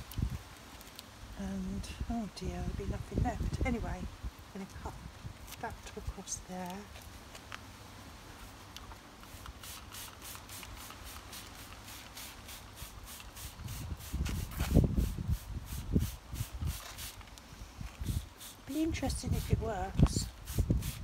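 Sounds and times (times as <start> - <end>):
spray bottle squirting: 9.2 - 17.3, 18.0 - 21.0.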